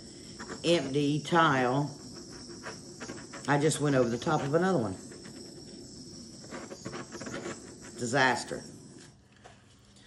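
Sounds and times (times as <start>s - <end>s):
butane torch hissing: 0.0s - 10.0s.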